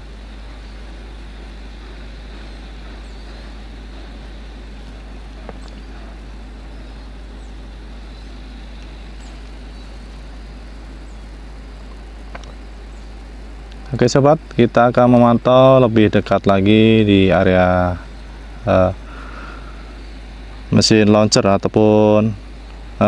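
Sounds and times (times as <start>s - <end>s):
constant low hum: 0.0s - 23.0s
steady hiss: 0.0s - 23.0s.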